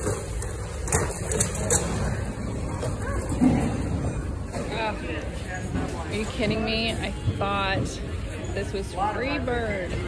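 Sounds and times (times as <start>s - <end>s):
low store noise: 0.0s - 10.0s.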